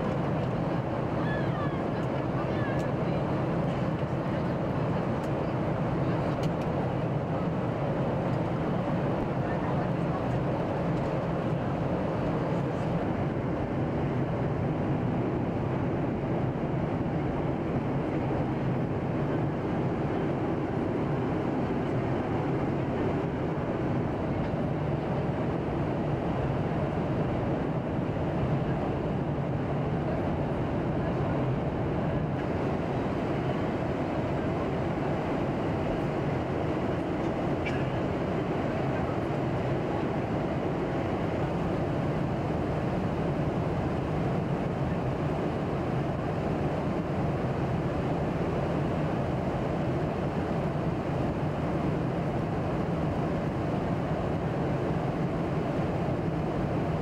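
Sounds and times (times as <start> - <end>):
airliner cabin engine drone: 0.0 - 57.0.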